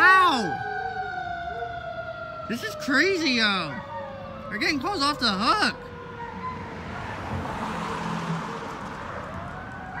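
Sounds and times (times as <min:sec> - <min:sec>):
faint distant siren: 0:00.0 - 0:10.0
car driving past: 0:06.4 - 0:10.0.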